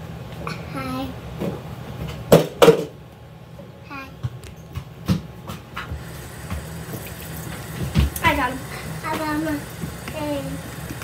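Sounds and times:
steady low hum: 3.0s - 11.0s.

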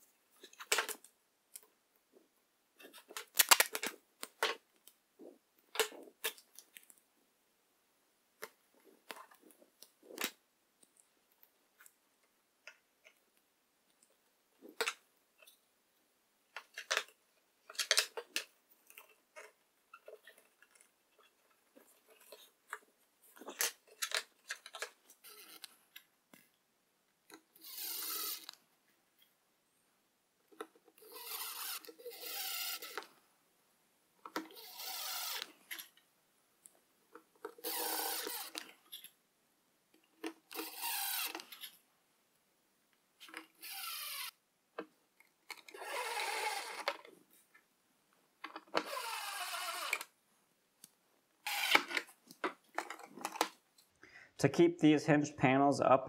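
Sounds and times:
cordless drill driving screws: 27.6s - 28.6s, 31.0s - 33.1s, 34.5s - 35.5s, 37.6s - 38.6s, 40.5s - 41.5s, 43.6s - 44.3s, 45.7s - 46.9s, 48.8s - 50.1s, 51.5s - 52.0s.

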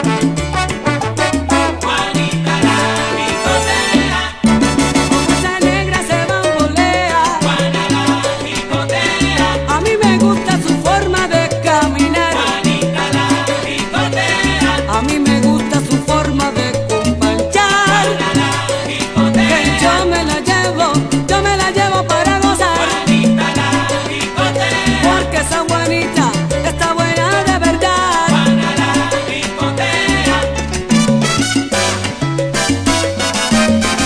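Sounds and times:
percussion clicking: 0.0s - 34.0s
salsa band instrumental: 0.0s - 34.0s.

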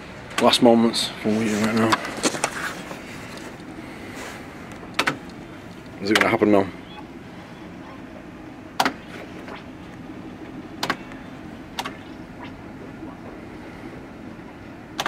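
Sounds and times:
fruit machine clicks: 4.9s - 5.4s, 6.0s - 6.5s, 8.8s - 9.1s, 10.8s - 12.1s.

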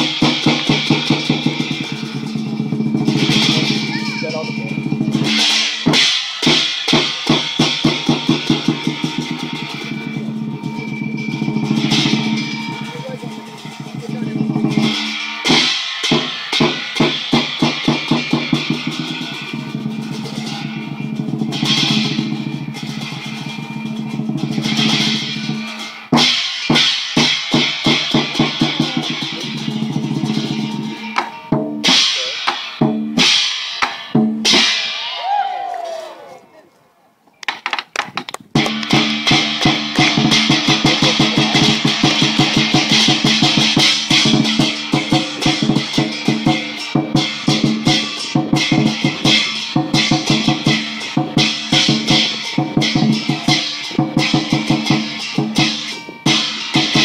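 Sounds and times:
large drum beaten in rolls: 0.0s - 35.1s, 38.6s - 57.0s
hand cymbals crashing: 0.0s - 35.4s, 38.6s - 57.0s.

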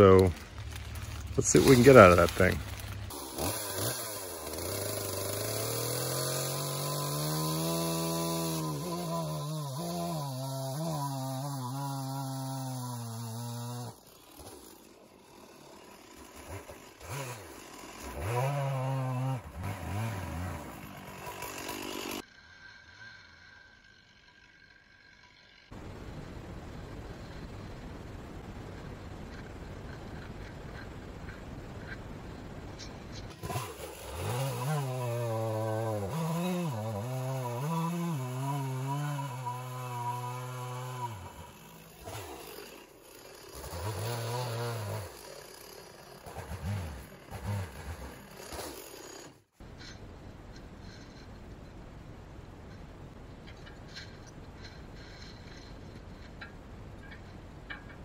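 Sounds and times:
chainsaw cutting log: 0.0s - 25.8s, 29.2s - 51.4s, 53.4s - 58.0s.

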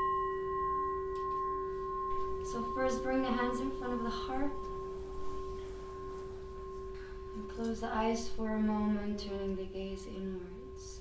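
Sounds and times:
metal singing bowl ringing: 0.0s - 11.0s.

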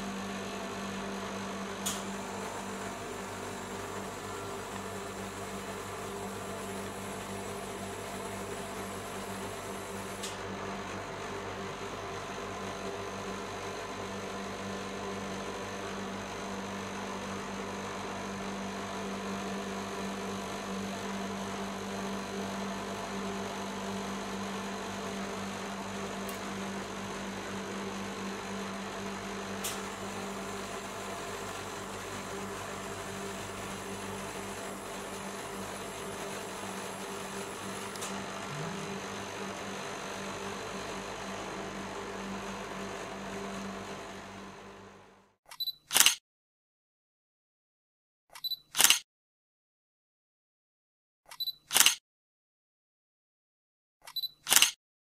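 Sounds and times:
compressor humming: 0.0s - 12.6s, 22.3s - 45.0s.

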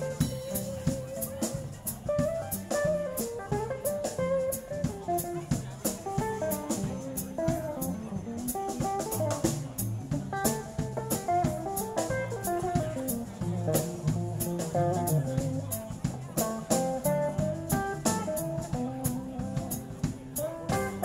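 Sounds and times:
bass guitar: 0.0s - 21.0s
drum kit: 0.0s - 21.0s
guitar melody: 0.0s - 21.0s.

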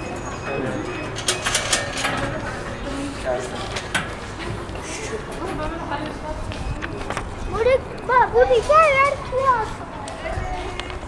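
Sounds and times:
distant voices: 0.0s - 11.0s
metal turnstile clicking: 0.2s - 6.2s.

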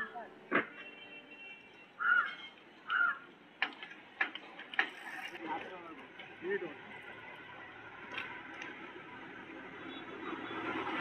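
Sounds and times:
bird harsh calls: 2.0s - 3.3s.

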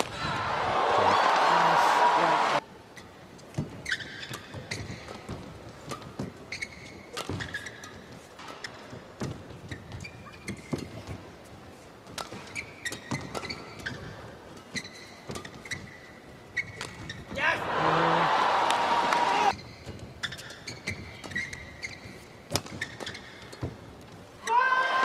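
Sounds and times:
arena crowd murmur: 0.1s - 2.6s, 17.6s - 19.5s
shoes squeaking on court: 3.0s - 17.4s, 19.5s - 24.3s.

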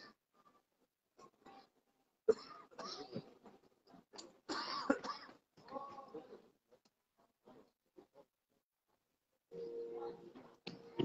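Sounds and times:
person coughing and clearing throat: 2.3s - 3.3s, 4.5s - 5.4s.

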